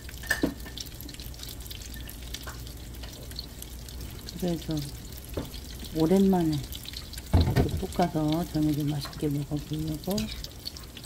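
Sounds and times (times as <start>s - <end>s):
frying sizzle: 0.0s - 11.0s.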